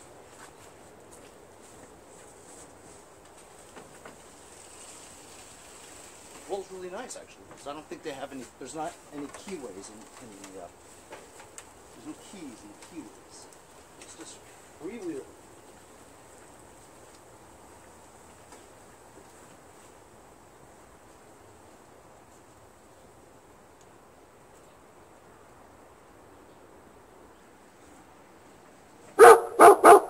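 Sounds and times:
faint background noise: 0.0s - 30.0s
dog barking: 29.2s - 30.0s.

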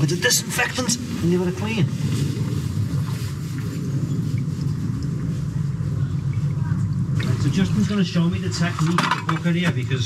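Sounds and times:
wastewater running rumble: 0.0s - 10.0s.

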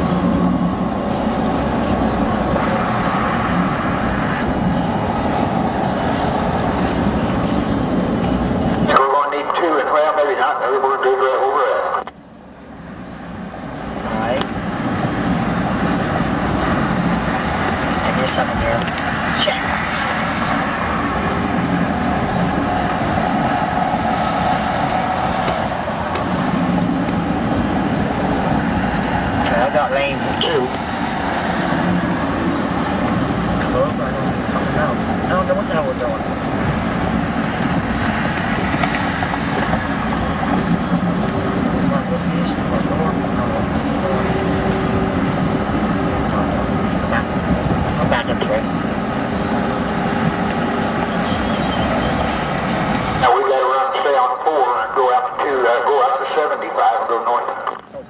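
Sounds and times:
road and engine noise in car: 0.0s - 58.0s
indistinct radio sound: 8.8s - 12.2s, 17.9s - 20.1s, 29.4s - 30.8s, 41.3s - 45.2s, 46.1s - 58.0s.

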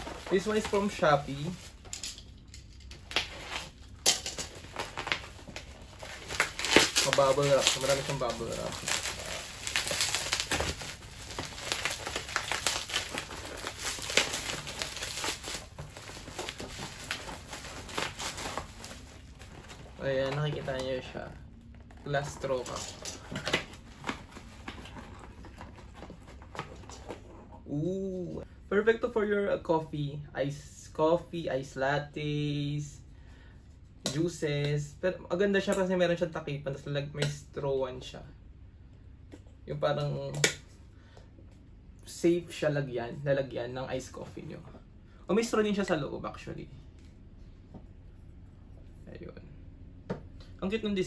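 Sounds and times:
bubble wrap parcel crinkling: 0.0s - 1.9s, 2.8s - 27.4s
packaging tearing: 2.9s - 20.7s.

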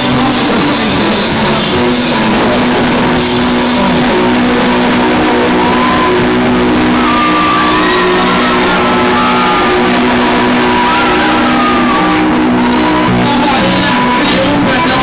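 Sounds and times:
rock band playing loudly: 0.0s - 15.0s.

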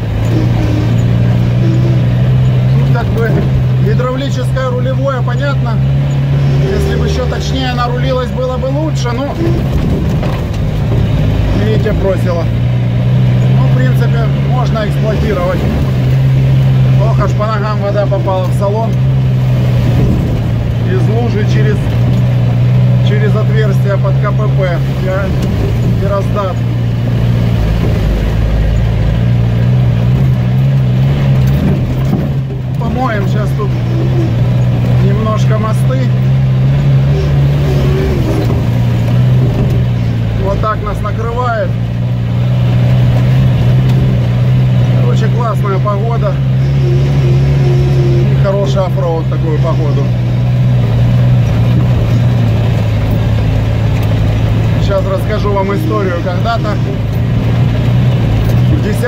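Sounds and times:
vehicle engine droning: 0.0s - 59.0s.

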